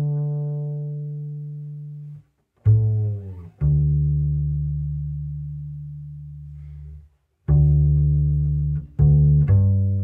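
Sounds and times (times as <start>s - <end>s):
double bass plucked: 0.0s - 10.0s.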